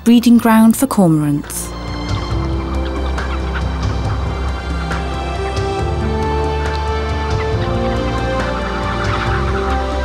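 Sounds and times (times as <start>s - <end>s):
low background music: 0.0s - 10.0s
cormorants calling: 1.4s - 10.0s.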